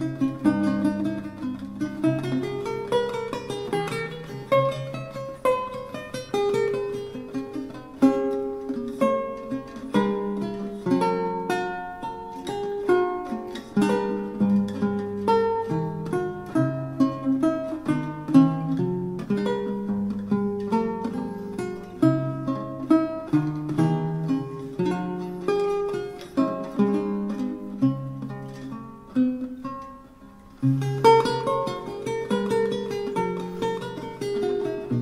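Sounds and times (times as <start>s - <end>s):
lute fingerpicking: 0.0s - 35.0s.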